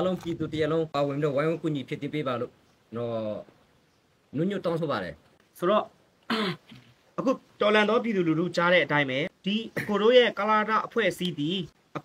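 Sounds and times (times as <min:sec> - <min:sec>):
man talking: 0:00.0 - 0:03.6, 0:04.3 - 0:06.0, 0:07.1 - 0:12.0.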